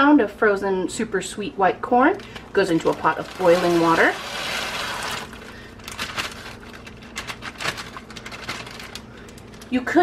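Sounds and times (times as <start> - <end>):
plastic bag crinkling: 2.1 - 10.0
corn kernels crackling and plopping: 2.2 - 10.0.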